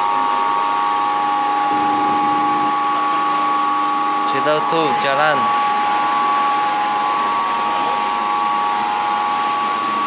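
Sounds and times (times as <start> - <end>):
pump motors running: 0.0 - 10.0
steady whine: 0.0 - 10.0.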